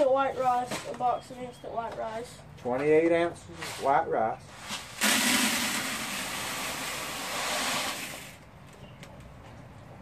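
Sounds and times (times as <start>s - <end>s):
dry rice pouring into plastic bucket: 5.0s - 8.3s.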